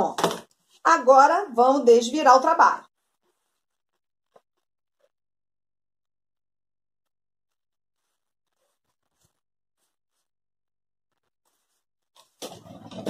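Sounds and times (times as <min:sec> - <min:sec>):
fabric rustling: 0:08.0 - 0:10.3, 0:11.5 - 0:13.0.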